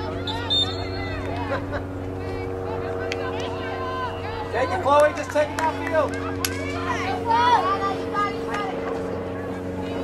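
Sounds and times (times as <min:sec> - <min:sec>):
faint distant voices: 0:00.0 - 0:10.0
low mechanical drone: 0:00.0 - 0:10.0.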